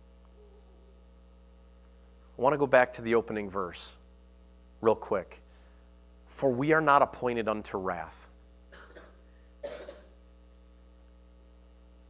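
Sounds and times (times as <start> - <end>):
faint electrical hum: 0.0 - 12.0
person coughing: 8.7 - 10.2.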